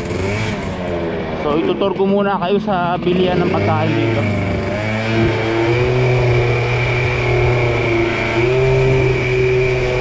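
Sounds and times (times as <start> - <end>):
small motorcycle engine running: 0.0 - 10.0.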